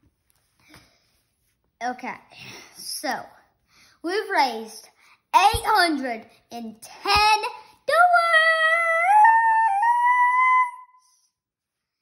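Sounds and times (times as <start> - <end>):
child singing a high ooh: 7.2 - 11.4.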